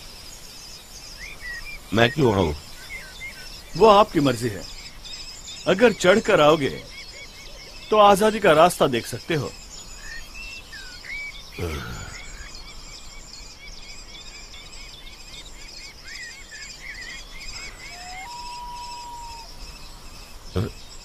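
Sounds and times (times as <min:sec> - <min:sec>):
birds chirping: 0:00.0 - 0:21.0
faint high insect hum: 0:00.0 - 0:21.0.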